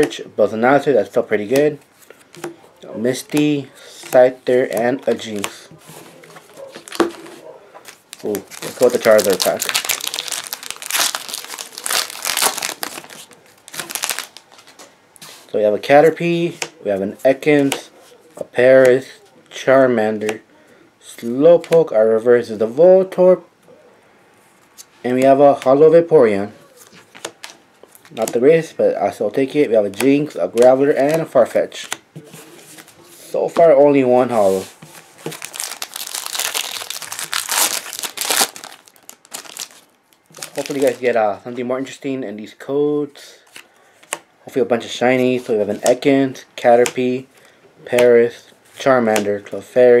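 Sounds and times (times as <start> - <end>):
foil wrapper crinkling: 7.8 - 14.8, 34.4 - 41.2.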